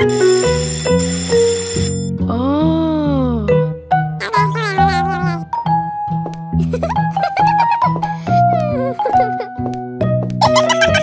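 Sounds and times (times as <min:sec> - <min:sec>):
school bell ringing: 0:00.0 - 0:02.1
background music: 0:00.0 - 0:11.0.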